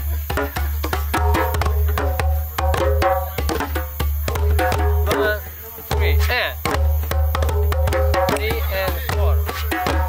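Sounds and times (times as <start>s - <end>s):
djembes drumming: 0.0s - 10.0s.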